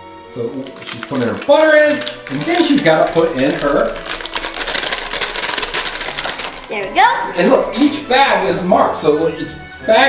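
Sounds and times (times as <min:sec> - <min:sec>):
paper wrapper crinkling: 0:00.5 - 0:07.1.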